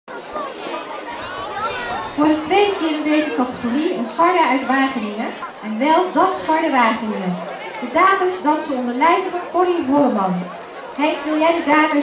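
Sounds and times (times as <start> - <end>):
audience chatter: 0.1 - 12.0.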